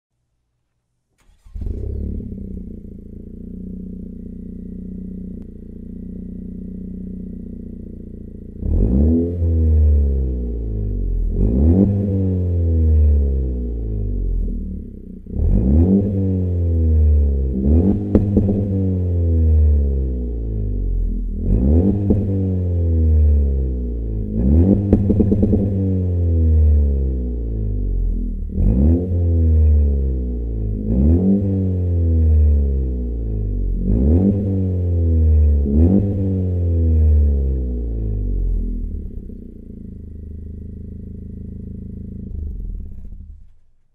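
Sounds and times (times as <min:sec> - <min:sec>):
car engine starting and idling: 0:01.0 - 0:43.9
car engine revving: 0:01.2 - 0:43.8.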